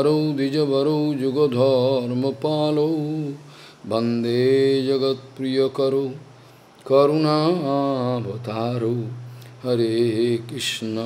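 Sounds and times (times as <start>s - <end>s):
man chanting a prayer: 0.0s - 11.0s
short breaths: 3.4s - 3.9s, 9.2s - 9.6s.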